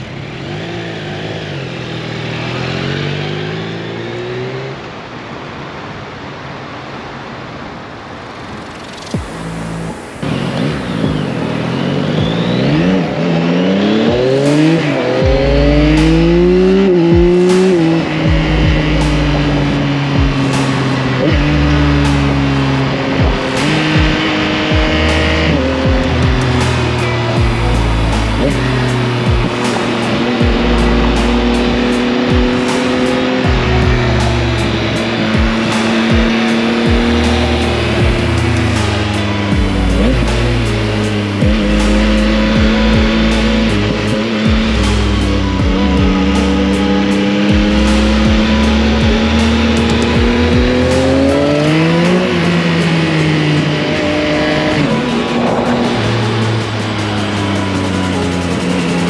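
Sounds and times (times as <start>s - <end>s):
motorcycle engine revving: 0.0s - 5.2s, 9.1s - 59.0s
background music with deep bass: 8.7s - 59.0s.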